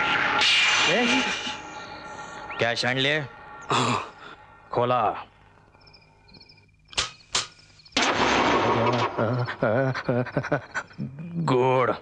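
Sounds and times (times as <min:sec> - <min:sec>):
loud harsh noise: 0:00.0 - 0:04.5
crickets chirping: 0:00.0 - 0:12.0
sharp cracks: 0:06.9 - 0:09.5.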